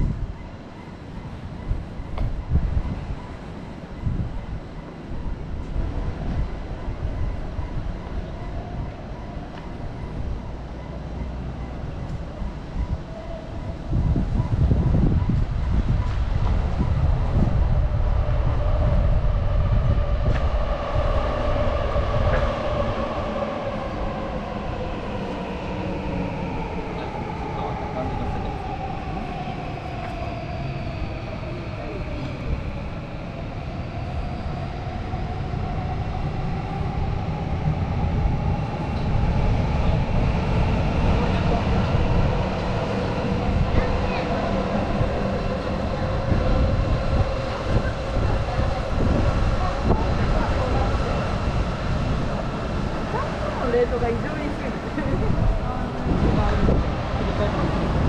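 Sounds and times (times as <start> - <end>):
electric train rumble: 0.0 - 58.0.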